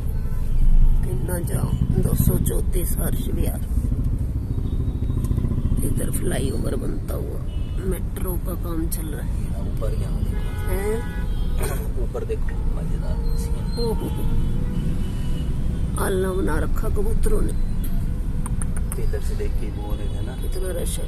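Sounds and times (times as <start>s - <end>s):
motorcycles: 0.7s - 21.0s
idling engines rumble: 0.8s - 10.4s.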